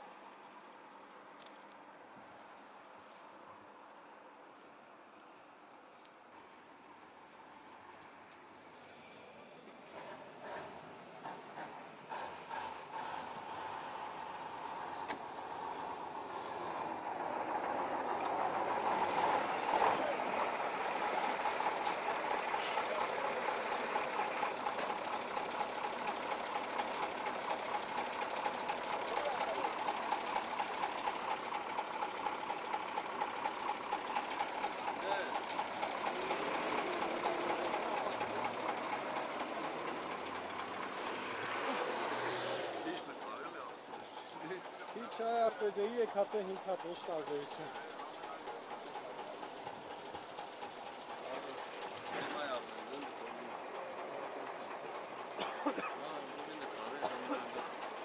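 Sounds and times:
truck diesel engine running: 9.6s - 58.0s.

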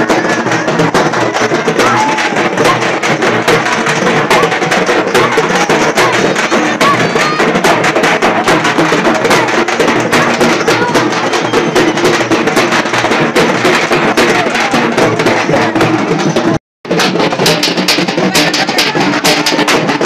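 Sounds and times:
fast loud drumming: 0.0s - 20.0s
music: 0.0s - 20.0s.

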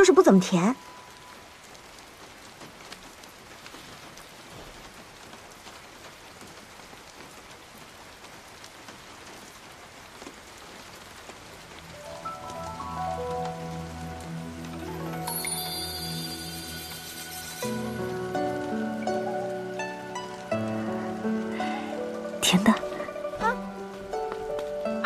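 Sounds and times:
steady rain falling: 0.0s - 25.0s
quiet background music: 11.4s - 25.0s.

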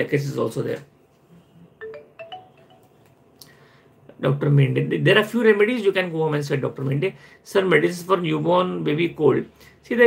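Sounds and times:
rising electronic chime: 1.8s - 3.0s.

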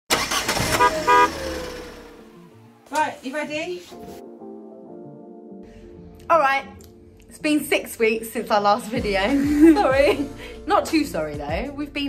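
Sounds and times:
vehicle horn toots: 0.6s - 2.1s.

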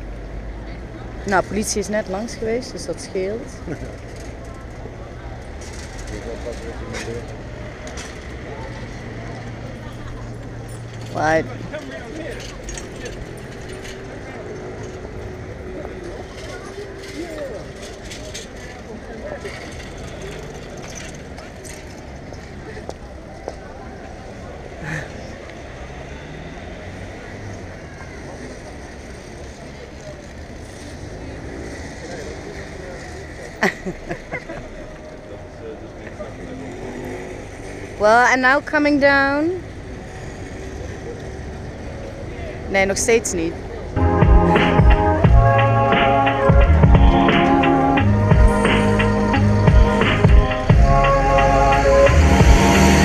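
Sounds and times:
faint indistinct voices: 0.0s - 38.0s
traffic rumble: 0.0s - 53.0s.

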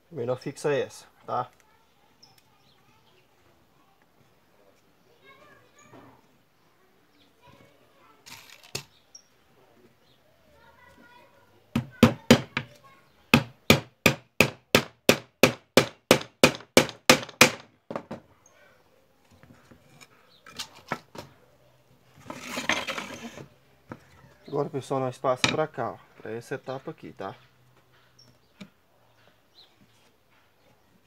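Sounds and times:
hammer driving nails into wood: 13.3s - 18.2s
wood scraping: 19.2s - 21.4s, 22.0s - 24.5s.

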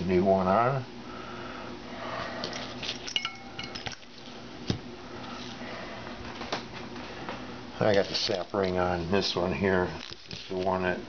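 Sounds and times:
metal parts clinking: 2.4s - 4.3s.

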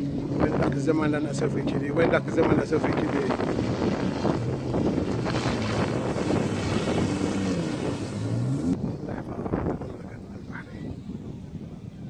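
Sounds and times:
jet ski engine running: 0.0s - 12.0s
wind buffeting microphone: 0.0s - 12.0s.

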